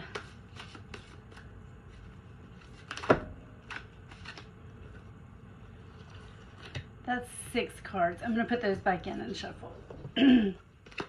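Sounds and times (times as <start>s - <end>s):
cards being shuffled: 0.0s - 5.1s, 5.8s - 6.9s, 10.8s - 11.0s.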